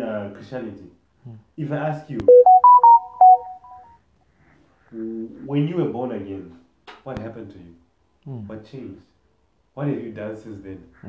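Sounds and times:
phone ringtone melody: 2.3 - 3.9.

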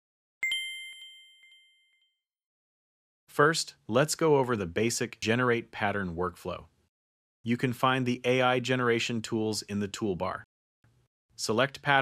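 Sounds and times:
faint short chimes: 0.4 - 2.1
notification bell ding: 0.4 - 2.1.

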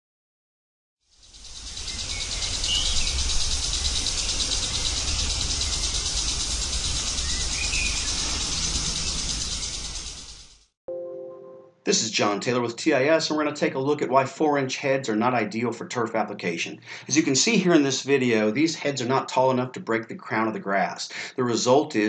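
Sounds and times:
insects chorus: 1.1 - 10.6
bird chirps: 1.2 - 10.5.

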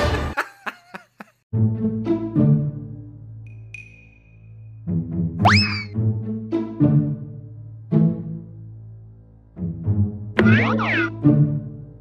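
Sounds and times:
cartoon background music: 1.5 - 3.8, 4.5 - 8.9, 9.5 - 12.0.

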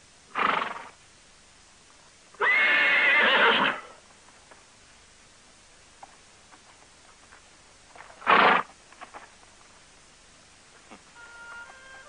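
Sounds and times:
horse whinnying: 2.4 - 3.9.

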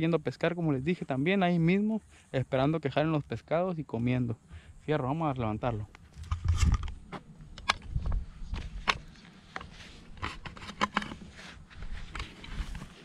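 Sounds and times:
equipment handling clicks and knocks: 5.9 - 13.0.

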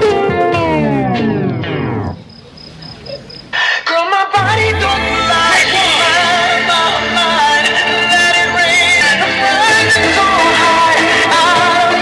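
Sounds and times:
dance music: 3.9 - 12.0.

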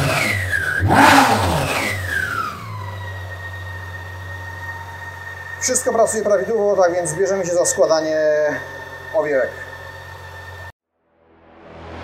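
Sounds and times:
motorcycle engine revving and idling: 0.0 - 10.8.

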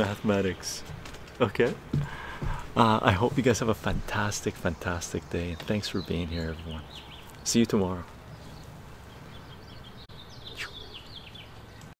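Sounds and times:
birds chirping and twittering: 0.0 - 11.9
low background noise: 0.0 - 11.9.

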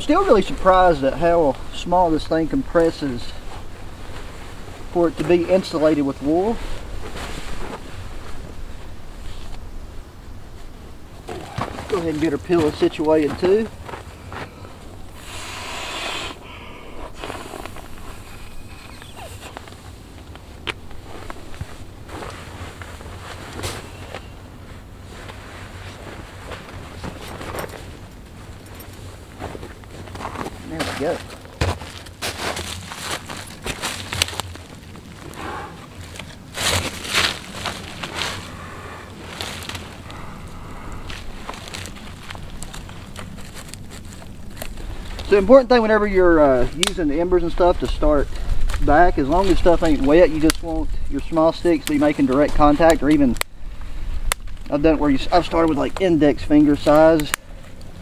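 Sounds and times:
camping gear rustling and clicking: 0.0 - 9.9, 10.5 - 15.3, 17.0 - 58.0
steady low rumble: 0.0 - 15.3, 16.4 - 58.0.

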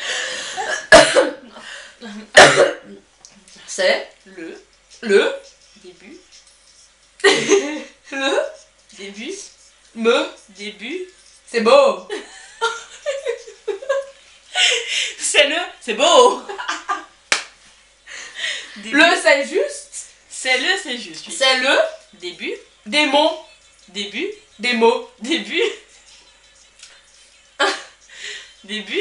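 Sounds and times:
woman laughing: 0.0 - 2.4, 7.2 - 8.6, 12.0 - 15.4, 16.2 - 17.1, 25.2 - 25.9, 27.6 - 29.0
sharp cough: 0.7 - 1.4, 2.4 - 2.9.

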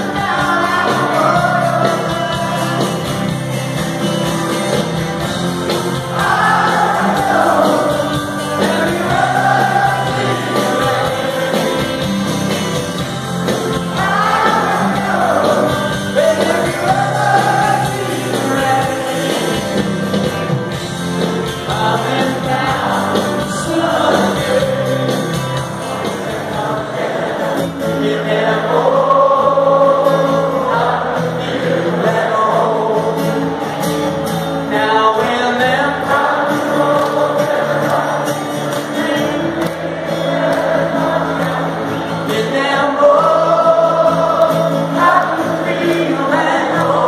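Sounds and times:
crowd singing together: 0.0 - 47.0
distant live rock band: 0.0 - 47.0.

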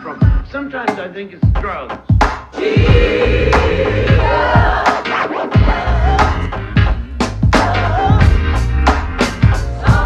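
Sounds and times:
electronic hip-hop beat: 0.0 - 10.0.

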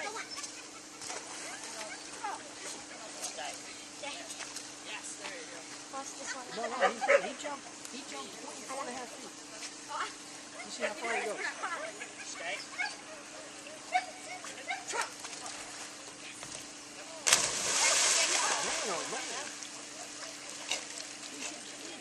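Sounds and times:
dog splashing into water: 17.2 - 19.6
water sloshing: 17.2 - 21.6.

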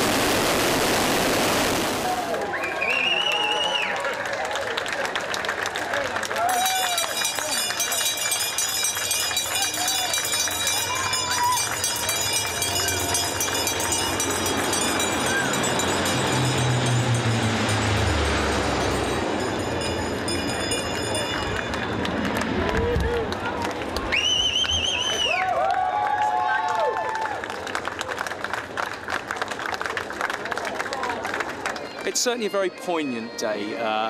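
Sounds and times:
crowd chatter: 2.0 - 16.4, 19.2 - 24.2
propeller aircraft flying overhead: 7.0 - 24.1.

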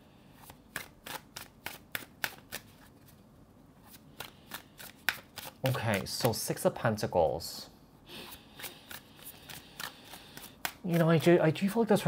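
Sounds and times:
cards being shuffled: 0.4 - 6.4, 8.6 - 11.6.

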